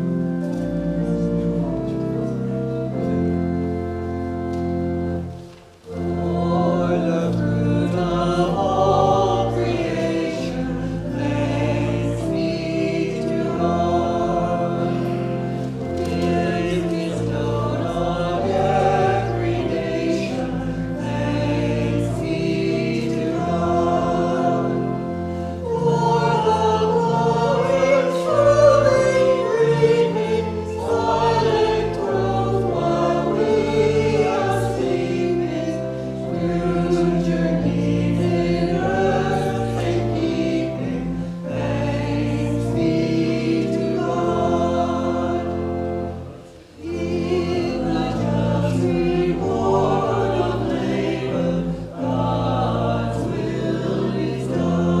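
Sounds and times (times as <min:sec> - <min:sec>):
church choir singing a hymn: 0:00.0 - 0:55.0.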